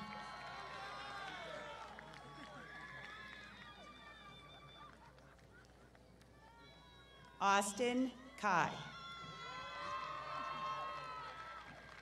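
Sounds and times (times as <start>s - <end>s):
distant crowd cheering and whooping: 0.0s - 7.4s, 8.2s - 12.0s.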